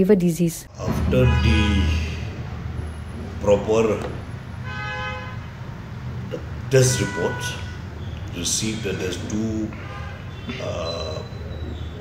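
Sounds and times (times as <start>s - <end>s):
low steady hum: 0.0s - 12.0s
horn steady note: 0.7s - 11.1s.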